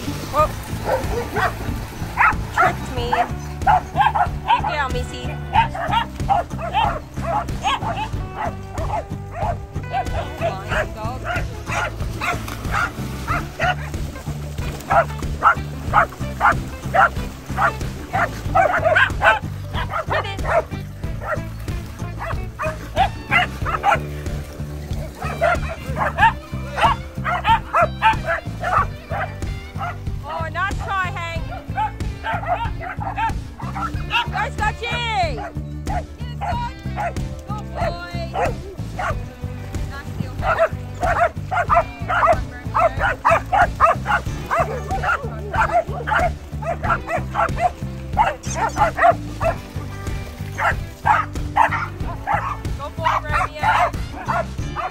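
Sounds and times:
dogs barking: 0.0s - 39.4s, 40.3s - 54.9s
background music with bass line: 0.0s - 54.9s
dog yelps and whines: 5.5s - 14.0s, 14.9s - 21.4s, 40.6s - 49.6s.

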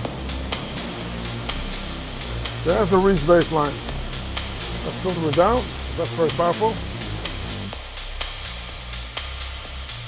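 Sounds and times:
dirty synth bass line: 0.0s - 8.8s
hi-hats: 0.0s - 10.0s.

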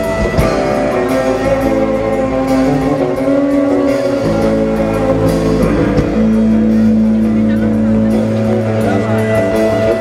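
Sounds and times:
bass guitar: 0.0s - 10.0s
drums: 0.0s - 10.0s
long held guitar chords: 0.0s - 10.0s.

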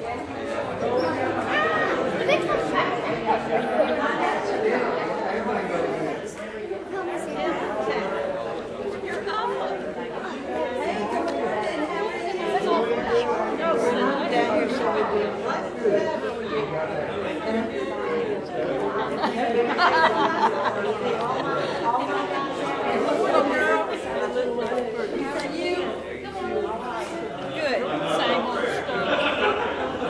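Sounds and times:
many voices chatting in a hall: 0.0s - 30.0s.

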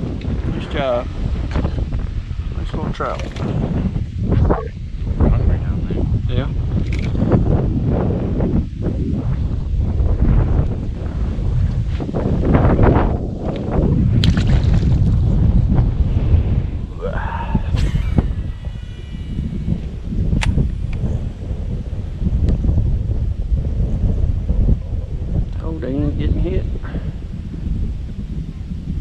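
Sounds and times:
wind buffeting microphone: 0.0s - 29.0s
sharp clicks: 6.8s - 7.2s, 20.4s - 21.0s.

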